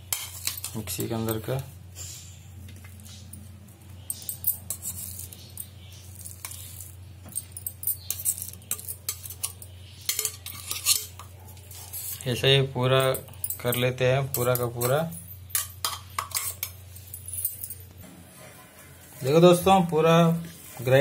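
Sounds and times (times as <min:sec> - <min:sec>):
spoon scraping metal jar: 0:00.0 - 0:01.5, 0:04.0 - 0:12.4, 0:13.0 - 0:21.0.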